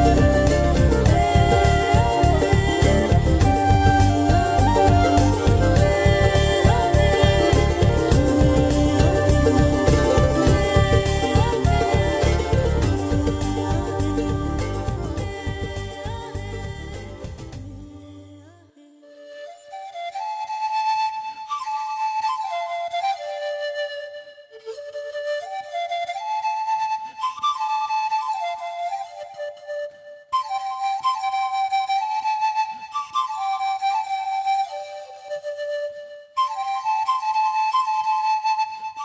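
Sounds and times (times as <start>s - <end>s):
flute playing slow melody: 0.0s - 17.9s, 19.1s - 39.0s.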